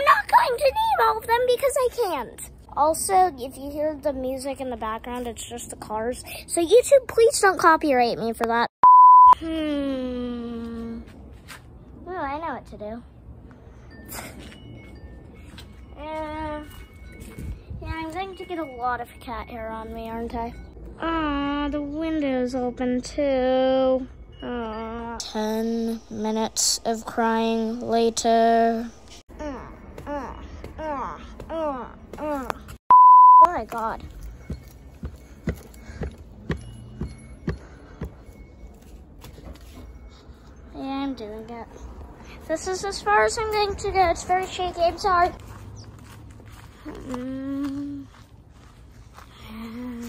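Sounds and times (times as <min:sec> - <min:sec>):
wind chimes ringing: 0:13.4 - 0:20.9, 0:22.5 - 0:26.4, 0:33.8 - 0:41.2
footsteps: 0:33.5 - 0:40.1, 0:43.5 - 0:50.0.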